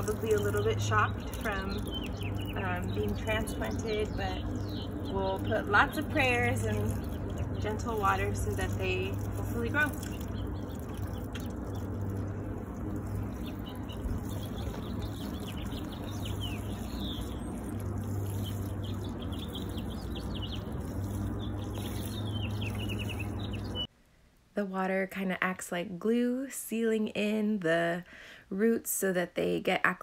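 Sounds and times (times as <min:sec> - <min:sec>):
small birds chirping: 0:00.0 - 0:23.9
water sprinkling onto soil: 0:00.0 - 0:23.9.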